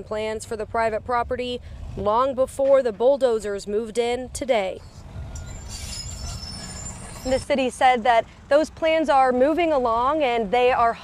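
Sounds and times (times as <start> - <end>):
excavator engine rumble: 0.0 - 11.0
high metallic squeal: 4.8 - 7.7.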